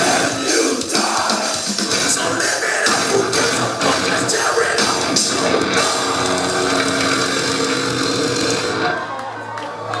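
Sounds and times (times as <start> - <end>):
metal band playing live: 0.0 - 9.0.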